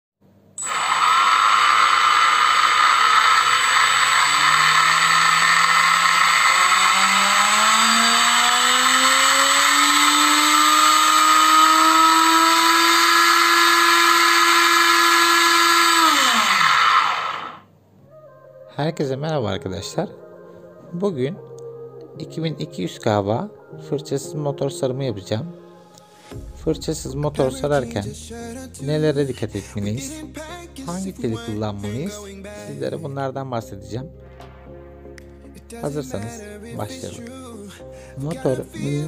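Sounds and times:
electric motor whine: 0.6 - 17.7.

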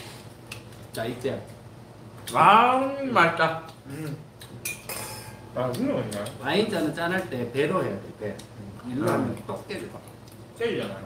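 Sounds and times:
wine glasses clinking: 4.6 - 5.4.

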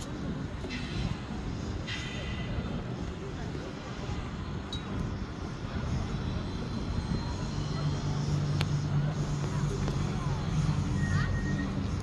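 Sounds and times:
low mechanical rumble and hum: 0.0 - 12.0
voices of onlookers: 0.0 - 12.0.

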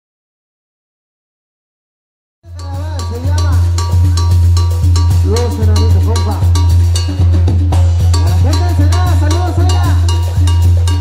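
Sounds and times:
brass band playing: 2.4 - 11.0
sharp percussion beat: 2.4 - 11.0
sousaphone bass: 2.4 - 11.0.

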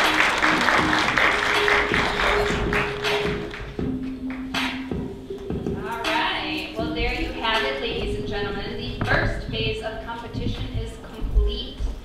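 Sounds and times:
audience applauding: 0.0 - 4.5
background music: 0.0 - 12.0.

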